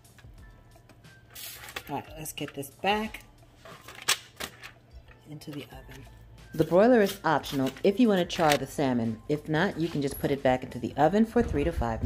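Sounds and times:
aluminium foil crinkling: 0:06.6 - 0:08.6.

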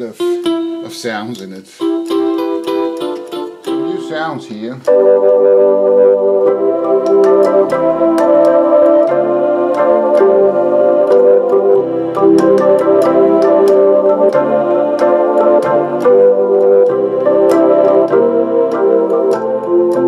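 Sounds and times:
organ-like held chords: 0:00.0 - 0:20.0
sharp rhythmic ticks: 0:00.0 - 0:20.0.

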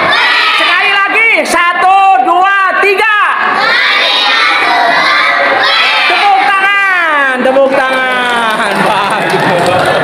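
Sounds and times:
children shouting together: 0:00.0 - 0:01.0, 0:03.4 - 0:06.8.

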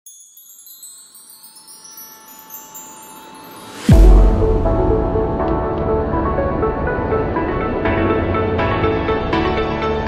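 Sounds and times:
high-pitched tinkling chimes: 0:00.0 - 0:04.6.

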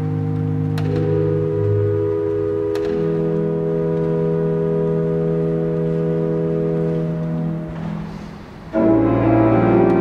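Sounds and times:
organ holding a sustained chord: 0:00.0 - 0:10.0.

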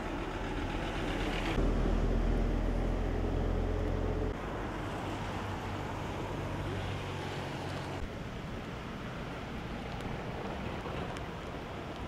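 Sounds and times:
truck driving past on wet road: 0:00.0 - 0:12.0.

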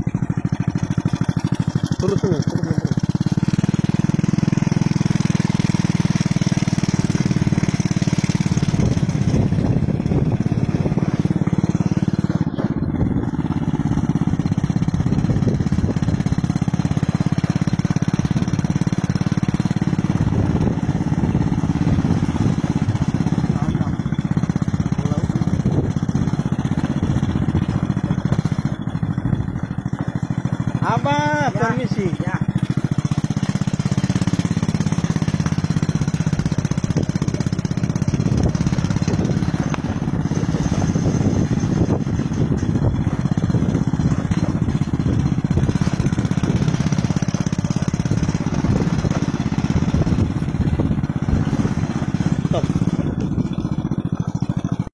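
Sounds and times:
small engine running: 0:00.0 - 0:54.9.

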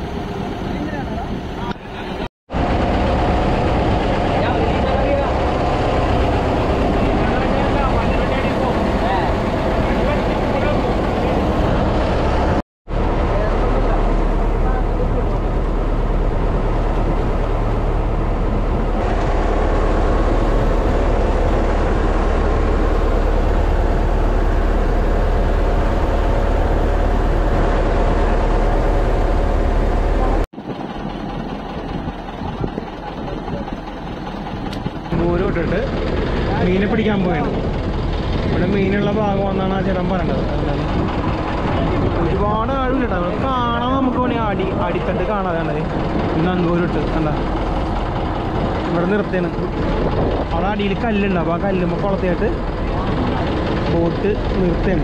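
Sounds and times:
boat engine running: 0:00.0 - 0:55.0
wind on microphone: 0:14.0 - 0:51.3.

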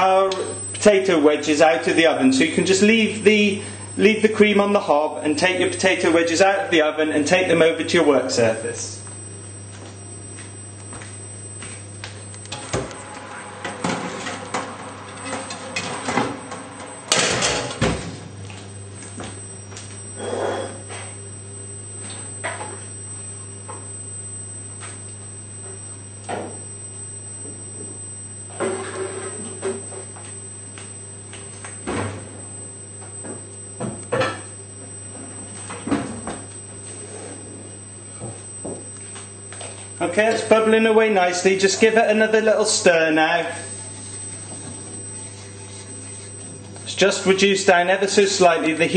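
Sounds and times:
steady low hum: 0:00.0 - 0:48.9.

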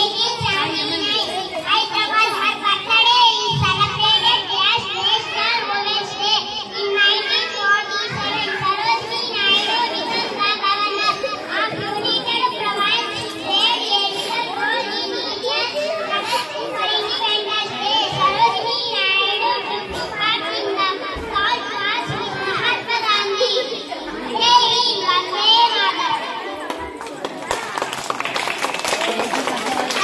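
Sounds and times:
children chattering: 0:00.0 - 0:30.0.

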